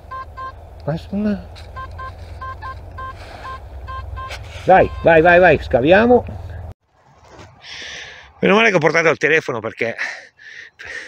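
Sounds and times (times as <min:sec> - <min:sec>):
metal detector beeps: 0:00.1 - 0:00.6, 0:01.7 - 0:05.6.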